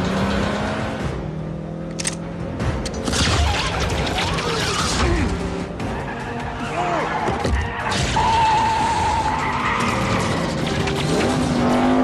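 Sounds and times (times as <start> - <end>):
car engines revving: 0.0 - 12.0
road noise: 0.0 - 12.0.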